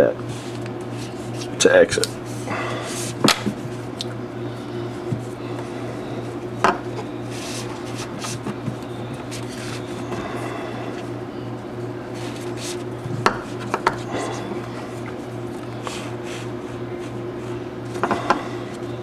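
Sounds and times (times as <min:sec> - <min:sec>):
steady low hum: 0:00.0 - 0:19.0
cord rubbing and rustling: 0:12.1 - 0:17.2.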